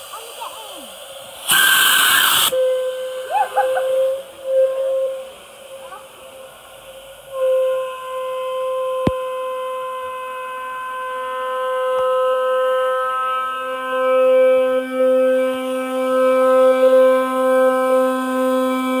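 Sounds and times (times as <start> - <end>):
liferaft venting gas whistling: 0.0 - 19.0
lower whistling tone: 1.4 - 19.0.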